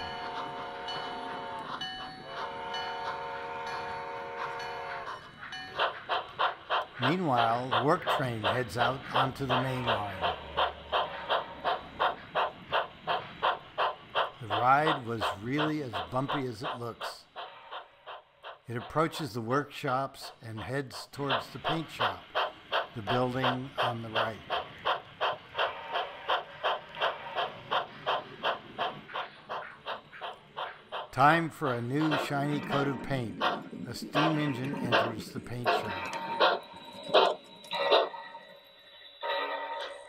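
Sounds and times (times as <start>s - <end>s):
steam locomotive chuffing: 0.0s - 40.0s.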